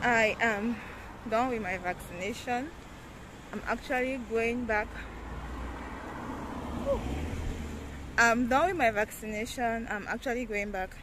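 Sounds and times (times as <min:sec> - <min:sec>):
car passing: 0:00.0 - 0:09.5.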